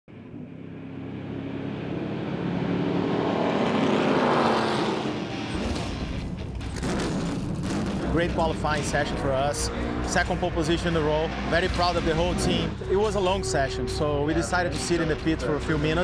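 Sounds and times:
race car engines passing: 0:00.1 - 0:16.0.

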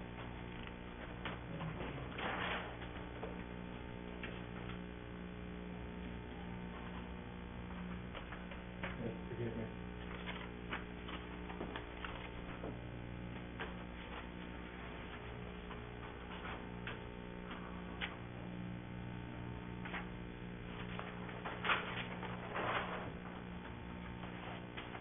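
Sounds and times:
electrical hum: 0:00.0 - 0:25.0.

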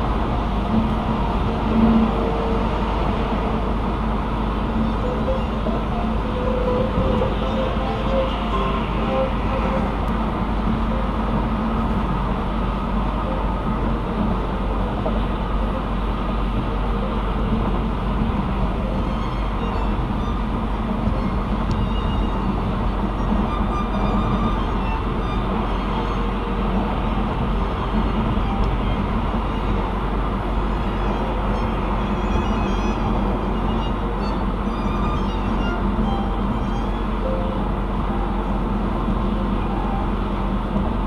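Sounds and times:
car road and tyre noise: 0:00.0 - 0:41.0.

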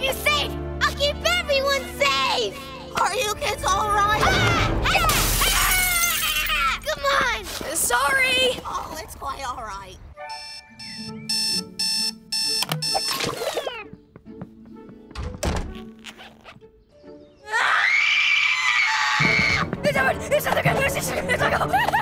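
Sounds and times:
alarm clock beeping: 0:10.2 - 0:13.8.

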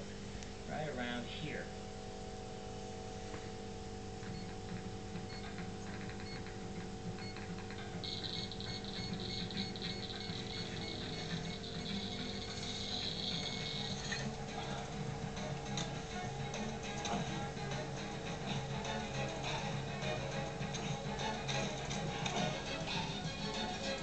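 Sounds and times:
film soundtrack through tv speakers: 0:00.0 - 0:24.0
steady hum: 0:00.0 - 0:24.0.

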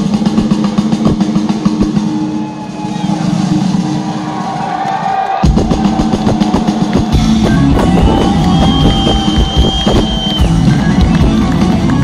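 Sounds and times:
drum rolls: 0:00.0 - 0:12.0
live rock band: 0:00.0 - 0:12.0
held bass and guitar note: 0:06.3 - 0:12.0.

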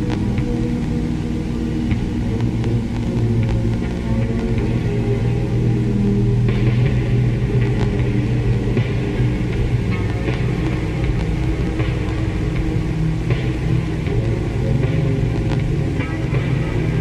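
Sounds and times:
faint crackles: 0:00.0 - 0:17.0
low ambient drone: 0:00.0 - 0:17.0.

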